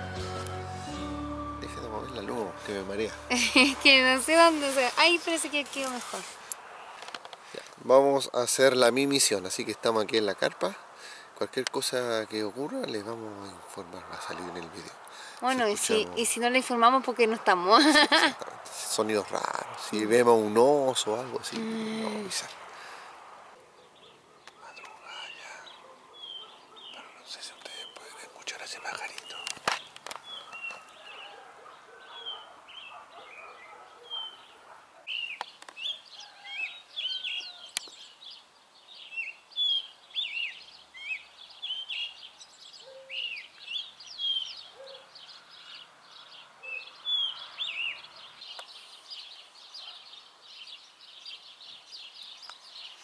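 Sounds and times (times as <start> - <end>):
songbirds chirping: 0.0 - 53.0.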